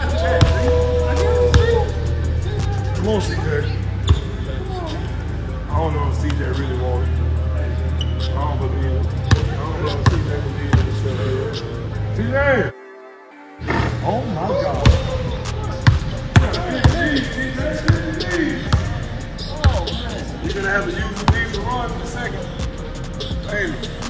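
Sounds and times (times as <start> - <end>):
voices: 0.0 - 12.7, 13.7 - 24.0
music: 0.0 - 24.0.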